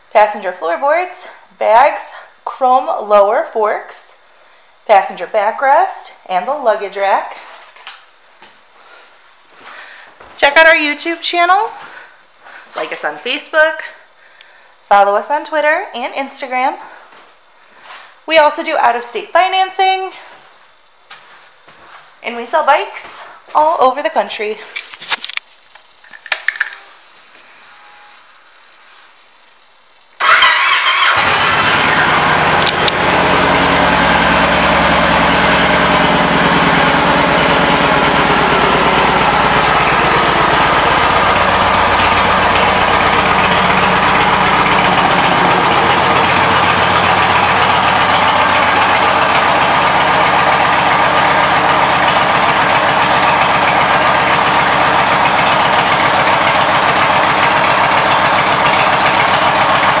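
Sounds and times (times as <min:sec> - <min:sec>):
motorcycle engine starting and idling: 0:30.2 - 1:00.0.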